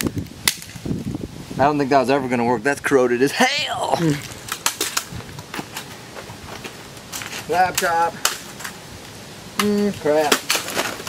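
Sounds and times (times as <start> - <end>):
footsteps on dirt and concrete: 5.1 - 7.5.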